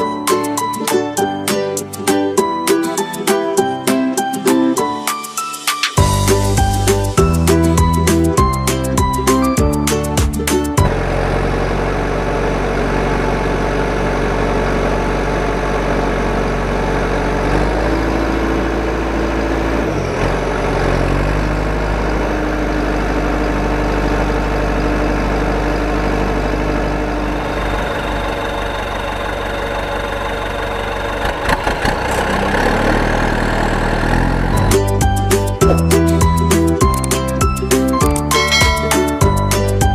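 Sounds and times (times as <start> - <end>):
background music: 0.0 - 10.9, 34.6 - 39.9
toy tractor engine: 10.9 - 35.2.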